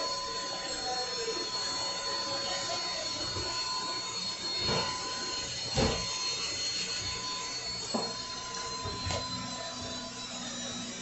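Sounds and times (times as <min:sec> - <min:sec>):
electric nail drill whining: 0:00.0 - 0:11.0.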